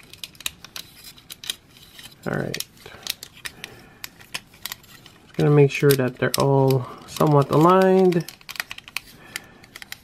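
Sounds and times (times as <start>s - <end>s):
plastic toy parts clicking: 2.4s - 10.0s.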